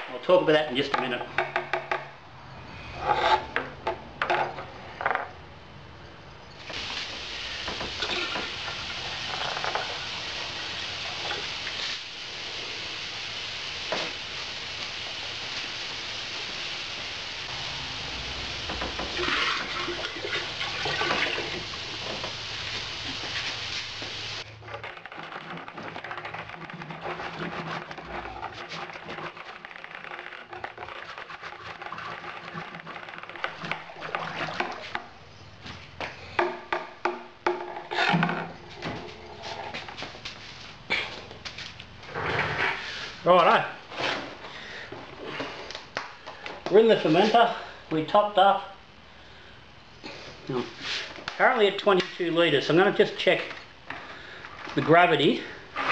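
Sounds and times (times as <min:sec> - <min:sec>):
water pouring and splashing: 0:06.6 - 0:35.1.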